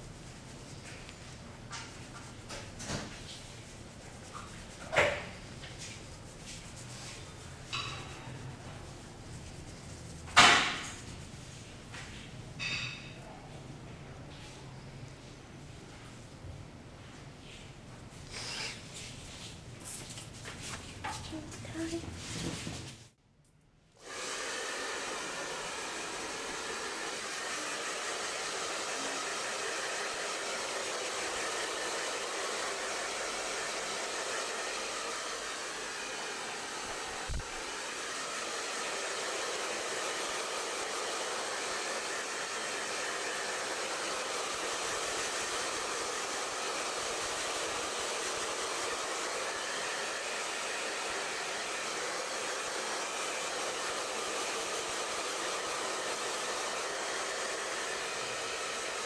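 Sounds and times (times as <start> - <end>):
hair dryer blowing: 24.0 - 59.0.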